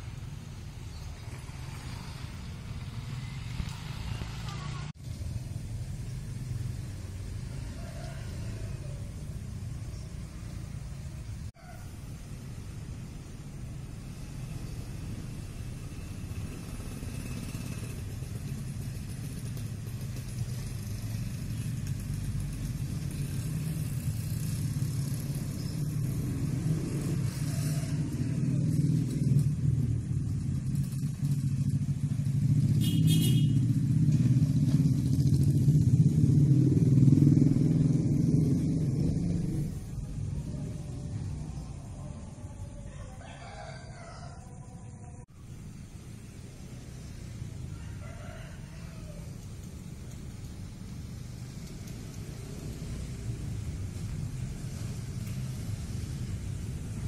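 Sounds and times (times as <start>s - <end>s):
vehicle rumble: 0.0s - 57.0s.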